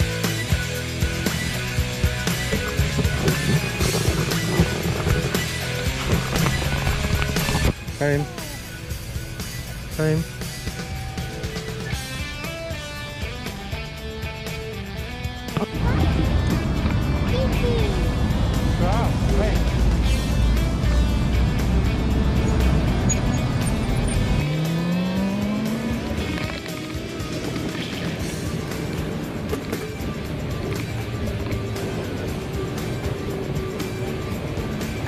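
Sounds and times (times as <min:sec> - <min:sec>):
bicycle wind and road rumble: 0:00.0 - 0:24.6, 0:26.0 - 0:35.0
background music: 0:00.0 - 0:35.0
small child's voice: 0:08.2 - 0:08.6, 0:17.2 - 0:18.1.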